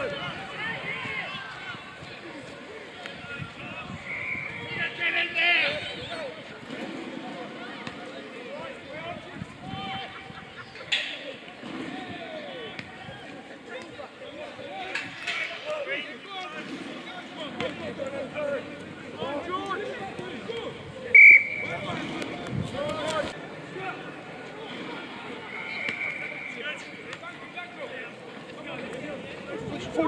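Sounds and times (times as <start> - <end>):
players and spectators shouting: 0.0 - 30.0
referee's whistle blast: 4.0 - 4.7, 21.1 - 21.8, 25.4 - 26.9.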